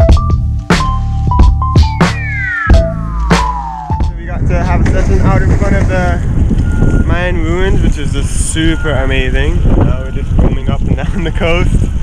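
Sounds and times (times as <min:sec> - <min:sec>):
background music with drums: 0:00.0 - 0:05.9
falling synth tone: 0:01.9 - 0:04.2
wind buffeting microphone: 0:04.0 - 0:12.0.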